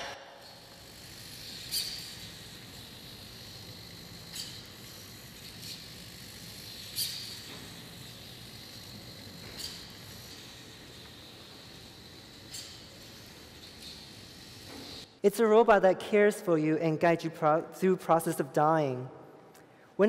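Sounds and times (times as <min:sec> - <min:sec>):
robotic arm squeaks: 0:00.0 - 0:15.1.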